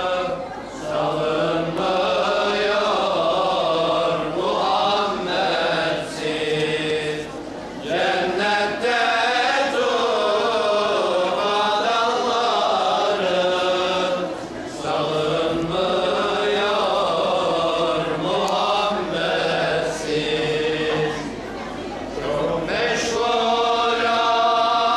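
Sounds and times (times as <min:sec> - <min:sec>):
religious chanting: 0:00.0 - 0:24.9.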